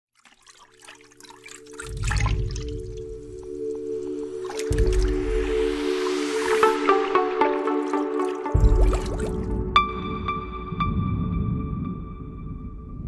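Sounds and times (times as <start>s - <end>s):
water splash and drips: 0.1s - 9.9s
held synth chord: 3.2s - 12.5s.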